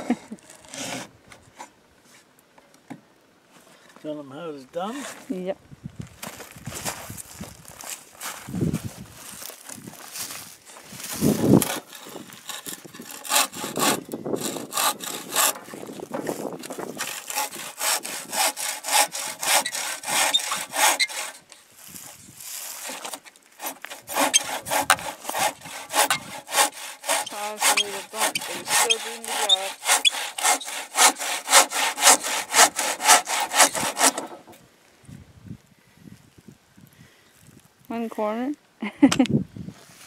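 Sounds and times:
hand saw cutting plywood: 0.3s - 1.1s, 11.4s - 21.6s, 22.6s - 34.6s.

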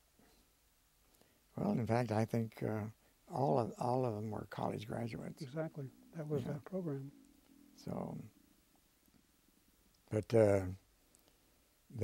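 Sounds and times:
man speaking: 1.6s - 7.2s, 7.8s - 8.3s, 10.1s - 10.8s.

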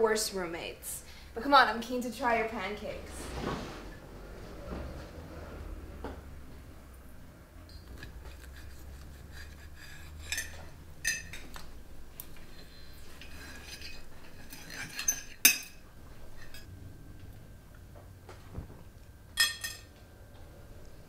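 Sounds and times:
cutlery clinking and scraping plates: 8.3s - 11.6s, 13.1s - 16.7s, 19.4s - 19.9s.

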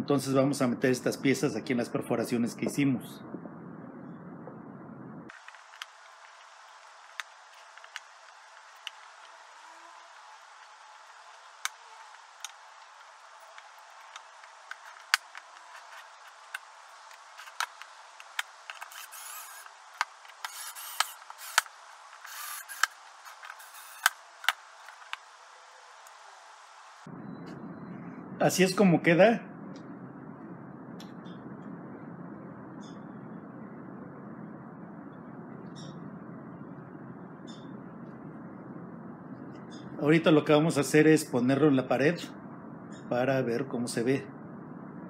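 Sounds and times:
faint hiss: 5.3s - 27.1s.

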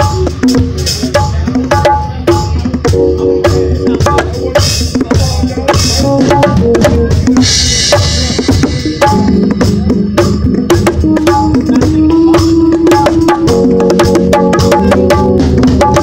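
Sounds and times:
bongos played by hand: 0.0s - 16.0s
drum kit: 0.0s - 16.0s
held bass notes: 0.0s - 16.0s.

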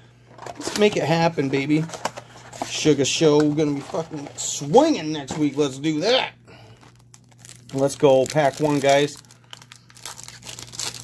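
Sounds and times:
foil wrapper crinkling and tearing: 6.5s - 11.0s.

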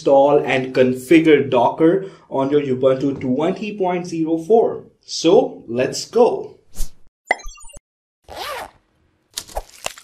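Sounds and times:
zipper-like run of clicks: 8.3s - 8.8s.

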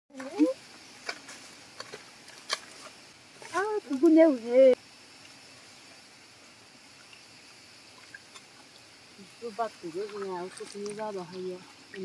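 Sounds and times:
woman speaking: 0.1s - 0.6s, 3.4s - 4.8s, 9.2s - 12.0s
faint steady hiss: 0.1s - 12.0s.

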